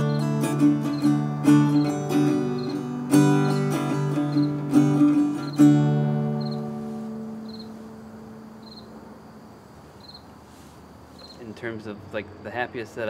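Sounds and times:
acoustic guitar chord ringing: 0:00.0 - 0:09.2
cricket chirping: 0:00.0 - 0:13.0.

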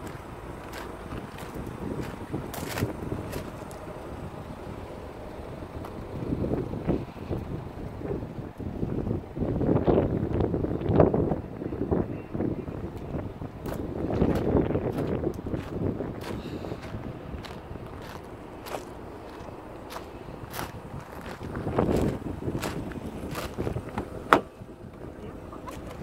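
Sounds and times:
footsteps on gravel: 0:00.0 - 0:03.9, 0:13.7 - 0:24.2
wind buffeting microphone: 0:00.0 - 0:26.0.

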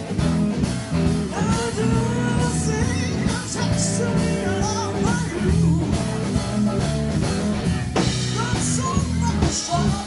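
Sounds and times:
blues-rock band playing: 0:00.0 - 0:10.0
electric guitar: 0:00.0 - 0:10.0.

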